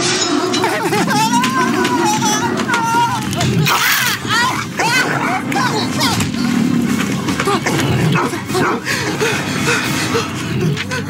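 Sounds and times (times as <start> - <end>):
large dog snarling and barking: 3.3 - 6.8, 7.4 - 8.9.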